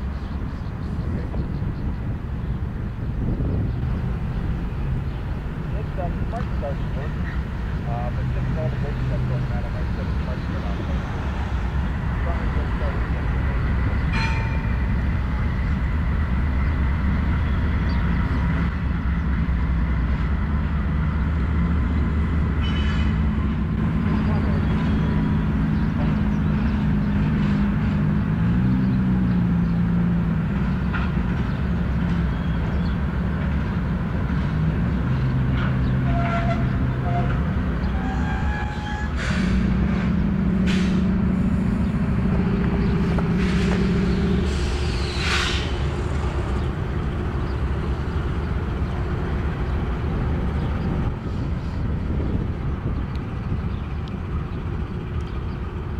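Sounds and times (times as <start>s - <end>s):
diesel engine drone: 0.0s - 55.9s.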